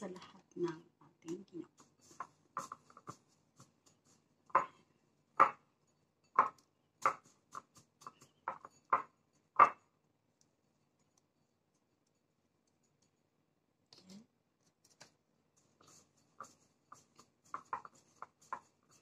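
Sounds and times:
dough ball tapping ceramic bowl: 1.3s - 10.0s.

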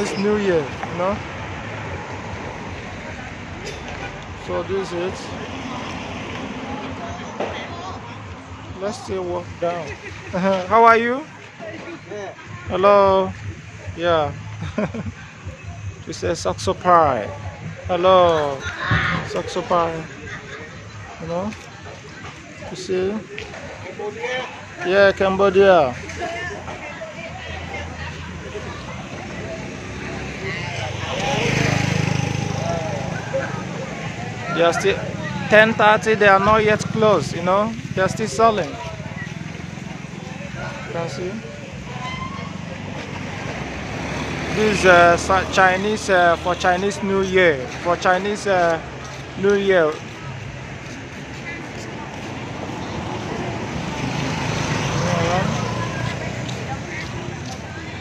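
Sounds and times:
vehicle engine passing by: 0.0s - 21.5s, 24.9s - 58.0s
traffic noise: 0.0s - 58.0s
voices: 0.0s - 58.0s.

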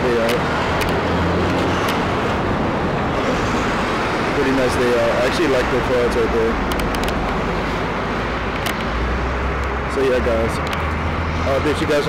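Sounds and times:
passing cars: 0.0s - 12.0s.

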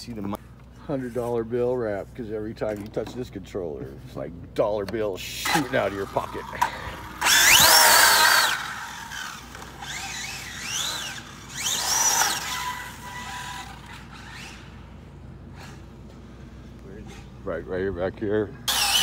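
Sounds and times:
electric motor whining: 5.5s - 14.9s, 18.7s - 19.0s.

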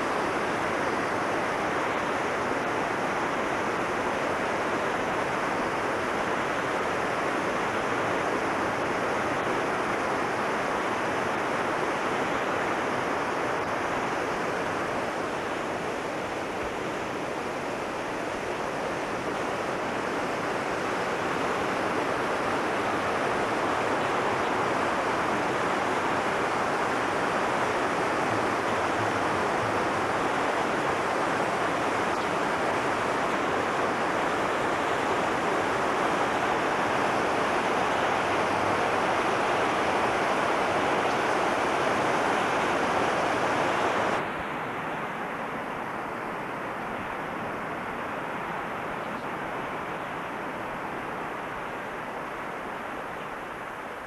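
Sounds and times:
running water rushing: 0.0s - 54.0s.

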